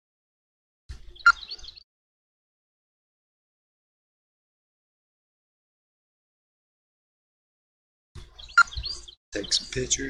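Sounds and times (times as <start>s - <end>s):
bird chirping: 1.0s - 1.8s, 8.2s - 10.0s.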